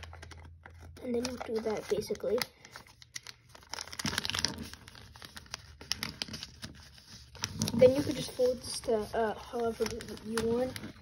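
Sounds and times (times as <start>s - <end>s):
paper crinkling: 0.0s - 11.0s.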